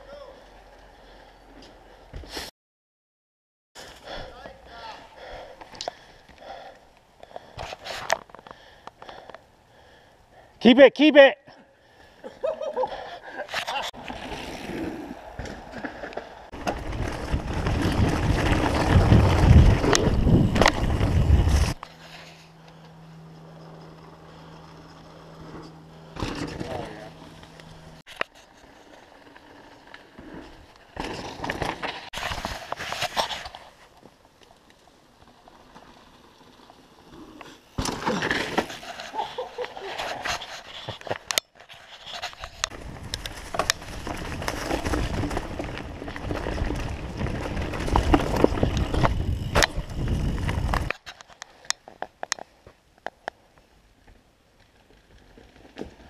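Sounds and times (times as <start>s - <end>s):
bike tyre rumble: 12.9s - 56.0s
wind noise: 16.6s - 21.8s, 42.7s - 51.0s.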